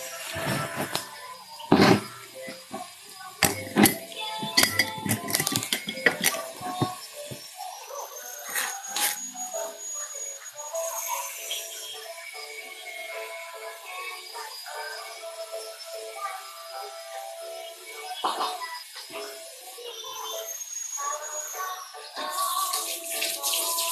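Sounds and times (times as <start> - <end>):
background music with melody: 0.0 - 23.9
glass jar and lid clinking: 3.4 - 7.4.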